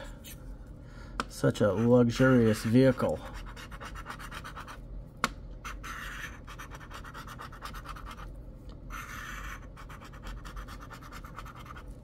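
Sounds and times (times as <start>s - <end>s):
coin scratching lottery ticket: 8.9s - 11.8s.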